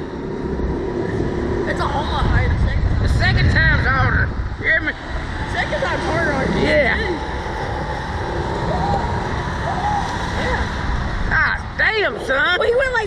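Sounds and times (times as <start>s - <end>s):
wind rumbling on microphone: 0.0s - 13.0s.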